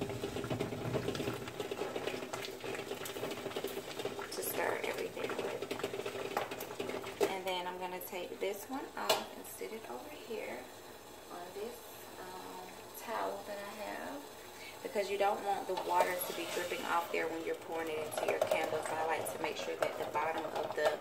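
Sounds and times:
chopsticks stirring wax in pitcher: 0:15.7 - 0:21.0.

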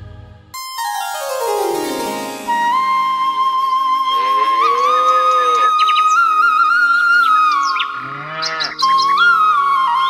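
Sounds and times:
keyboard backing: 0:00.1 - 0:08.0
flute melody: 0:00.6 - 0:10.0.

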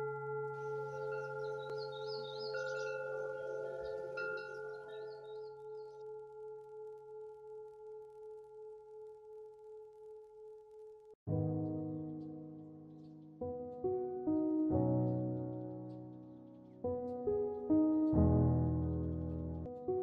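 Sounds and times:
high chimes tinkling: 0:00.0 - 0:06.0
singing bowl ringing: 0:00.0 - 0:10.2.

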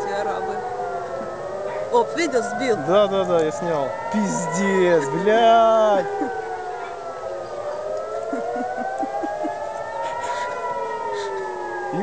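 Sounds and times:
air-raid siren wailing: 0:00.0 - 0:12.0.

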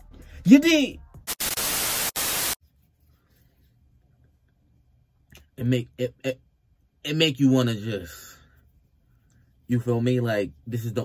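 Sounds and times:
tv static hiss: 0:01.2 - 0:02.6.

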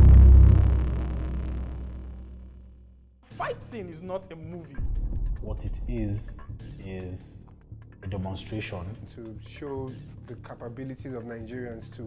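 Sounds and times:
deep sub-bass boom: 0:00.0 - 0:02.9.

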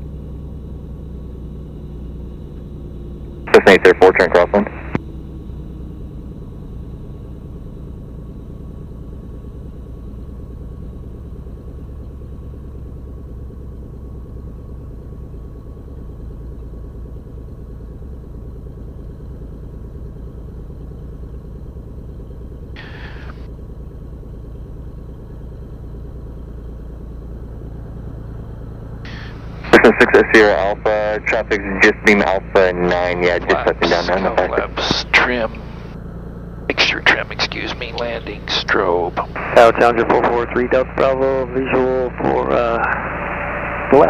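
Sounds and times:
piston aircraft engine running: 0:00.0 - 0:44.0.

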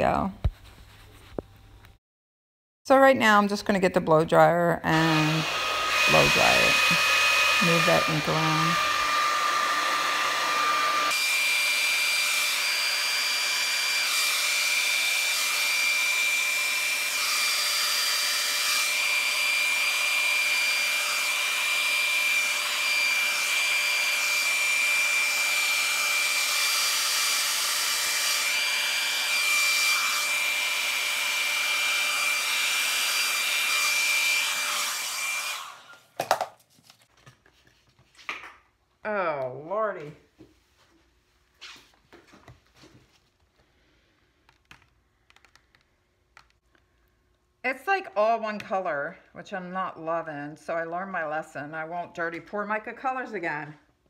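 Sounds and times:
blow dryer whining: 0:04.9 - 0:36.2.

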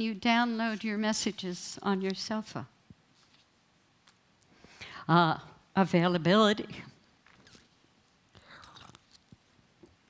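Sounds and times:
person sipping a drink: 0:08.3 - 0:09.4.

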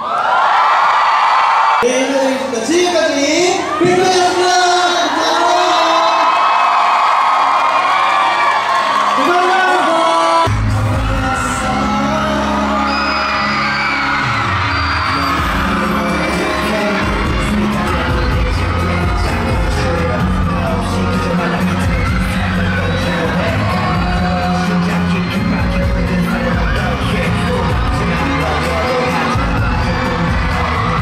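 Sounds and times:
crowd cheering and screaming: 0:00.0 - 0:31.0
person singing: 0:09.2 - 0:31.0
pop music with heavy bass: 0:09.2 - 0:31.0.

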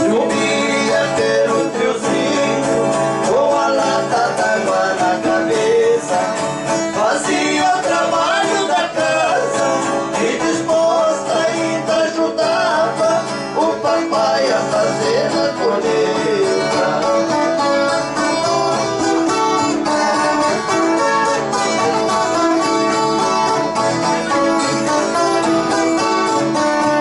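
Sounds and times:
acoustic guitar strumming: 0:00.0 - 0:27.0
viola caipira plucking: 0:00.0 - 0:27.0.

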